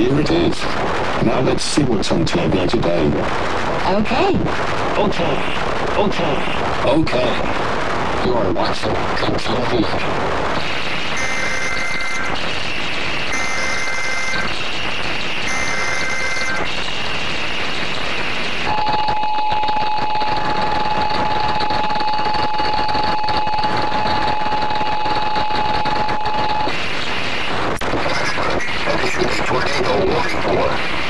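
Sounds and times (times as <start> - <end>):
buzzy data bursts: 0.0 - 31.0
distortion noise: 0.0 - 31.0
steady attention tone: 9.1 - 31.0.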